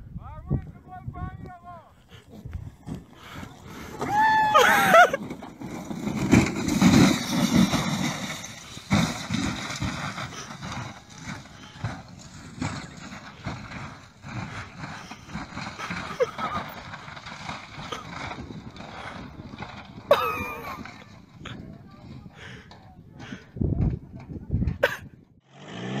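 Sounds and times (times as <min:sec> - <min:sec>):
wind buffeting microphone: 0:00.0 - 0:25.4.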